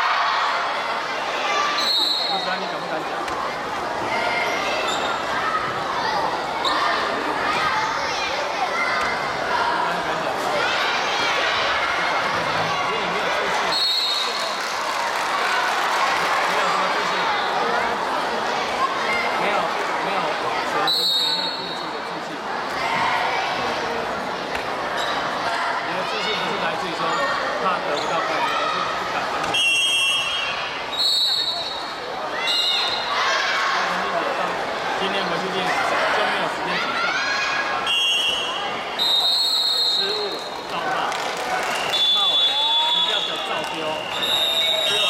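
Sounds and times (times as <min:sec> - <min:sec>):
girls shouting in echoing hall: 0:28.2 - 0:34.2, 0:35.9 - 0:39.4.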